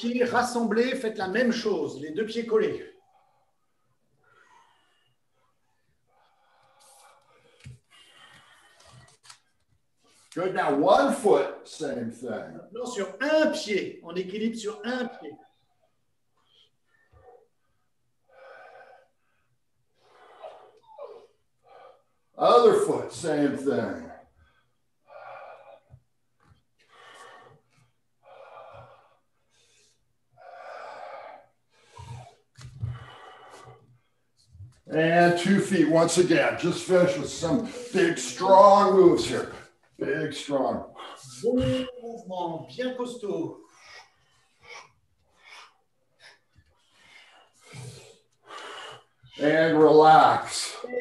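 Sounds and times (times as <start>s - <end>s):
man breathing while exercising: 3.0s - 9.4s, 24.4s - 34.8s, 43.6s - 49.4s.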